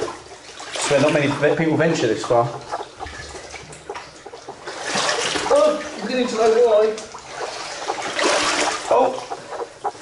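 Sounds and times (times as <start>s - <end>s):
legs wading through water: 0.0s - 10.0s.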